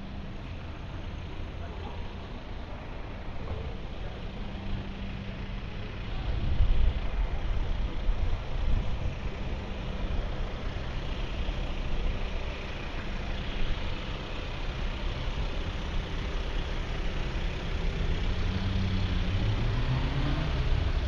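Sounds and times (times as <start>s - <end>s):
car engines idling: 0.0s - 21.0s
street noise: 0.0s - 21.0s.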